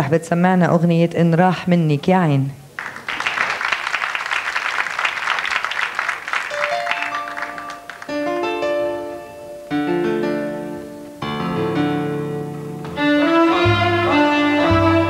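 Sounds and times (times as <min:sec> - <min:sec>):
studio audience applause: 0:02.8 - 0:08.7
orchestra with keyboard and strings: 0:06.5 - 0:15.0.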